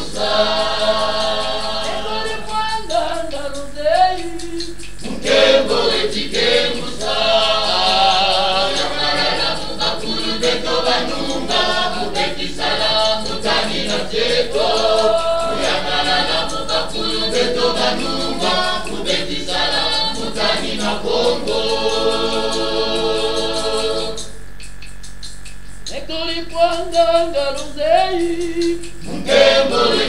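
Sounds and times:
choir singing a hymn: 0.0 - 24.4, 29.0 - 30.0.

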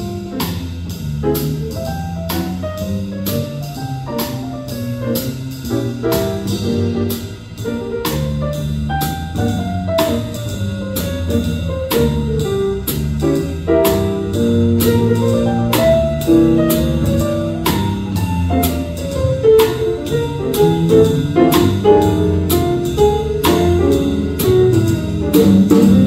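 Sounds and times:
drum and cymbal strokes: 0.0 - 26.0
piano chords: 0.0 - 26.0
walking bass line: 0.0 - 26.0.

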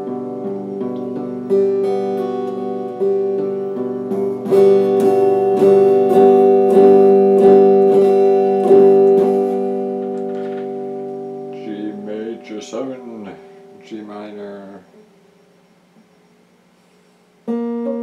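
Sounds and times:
electric guitar chord strums: 0.0 - 16.6, 17.4 - 18.0.

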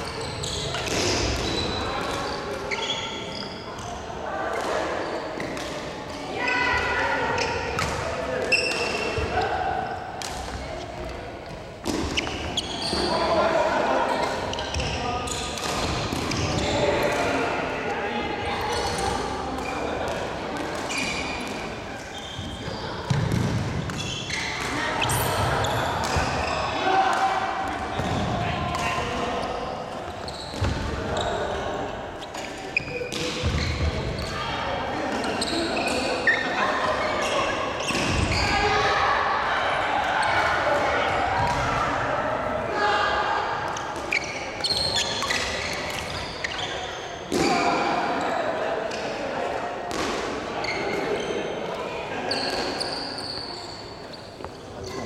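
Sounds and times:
players talking: 0.0 - 55.0.

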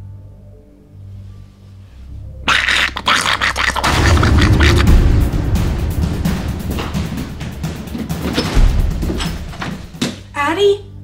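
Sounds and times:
creature raspy hiss: 2.5 - 5.1
rapid chattering scratches: 2.5 - 8.2
low scary music drone: 3.6 - 9.9.

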